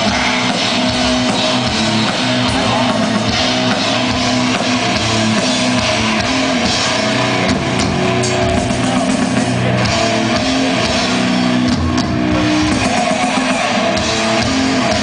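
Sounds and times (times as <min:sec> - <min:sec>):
bass riffing: 0:00.0 - 0:15.0
distorted electric guitar: 0:00.0 - 0:15.0
drum kit: 0:00.0 - 0:15.0.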